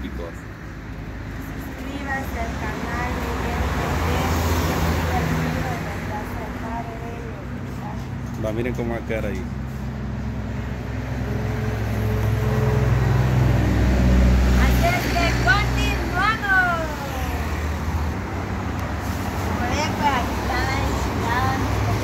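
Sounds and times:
vehicle engine humming: 0:00.0 - 0:22.0.

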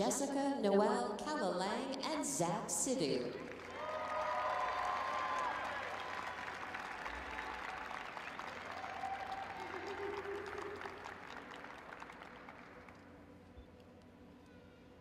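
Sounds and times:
audience applauding: 0:03.5 - 0:13.4
people cheering: 0:03.6 - 0:12.8.

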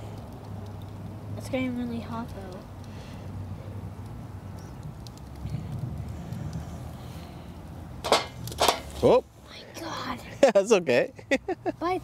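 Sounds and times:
wood fire crackling: 0:00.0 - 0:10.2
sharp pops of burning wood: 0:03.9 - 0:06.7, 0:08.0 - 0:09.1.

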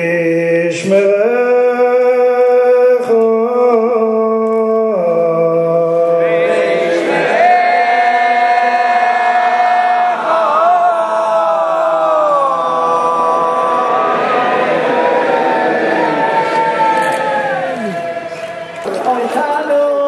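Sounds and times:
group chanting long notes: 0:06.1 - 0:18.9.

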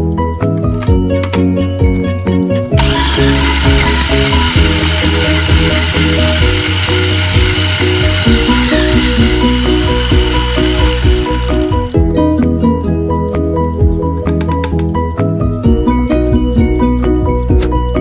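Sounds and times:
background music: 0:00.0 - 0:18.0
food processor motor whining: 0:02.8 - 0:12.6.

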